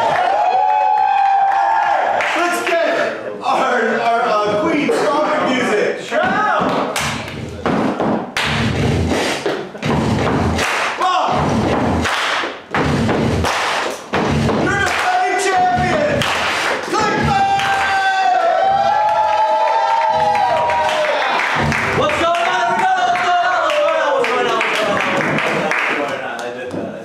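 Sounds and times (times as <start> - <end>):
loud thuds: 12.7 - 17.9
people shouting: 16.9 - 22.1.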